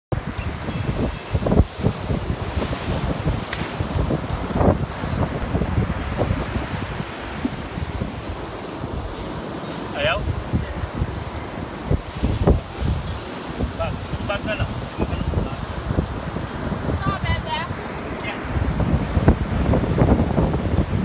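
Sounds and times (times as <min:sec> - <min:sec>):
surf breaking on shore: 0:00.1 - 0:21.0
wind buffeting microphone: 0:00.1 - 0:21.0.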